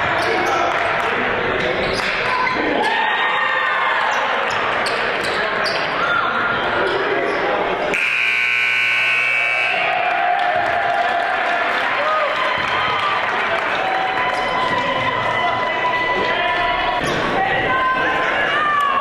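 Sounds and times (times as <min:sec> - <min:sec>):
crowd voices: 0:00.0 - 0:19.0
sneaker squeaks: 0:04.5 - 0:07.1
scoreboard buzzer: 0:07.9 - 0:10.0.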